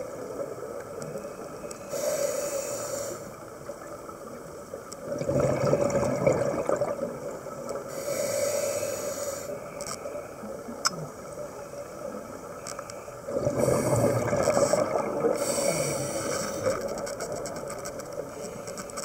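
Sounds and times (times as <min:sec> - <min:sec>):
hissing regulator inhale: 0:01.8 - 0:03.4, 0:07.9 - 0:09.7, 0:13.6 - 0:16.9
rush of exhaled bubbles: 0:05.1 - 0:07.3, 0:13.3 - 0:16.8.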